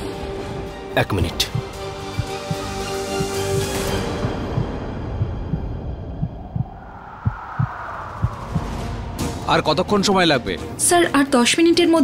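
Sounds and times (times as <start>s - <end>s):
low heartbeat thuds: 1.4s - 8.8s
soft whooshing swell: 6.0s - 9.2s.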